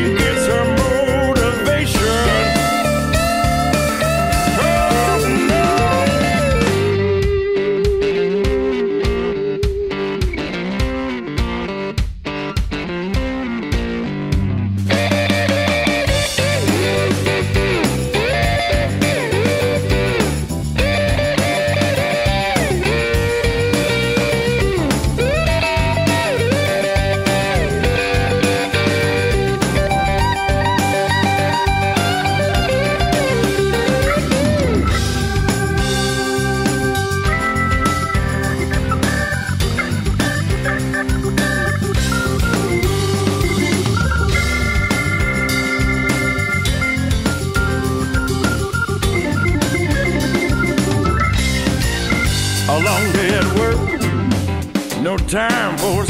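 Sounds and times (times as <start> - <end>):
blues-rock band playing: 0.0 - 56.0
electric guitar lead with bent notes: 0.0 - 56.0.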